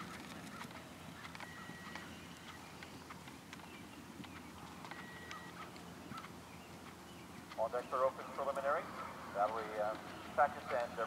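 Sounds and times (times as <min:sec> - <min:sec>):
horse hoofbeats on grass: 0:00.0 - 0:11.0
low outdoor hum: 0:00.0 - 0:11.0.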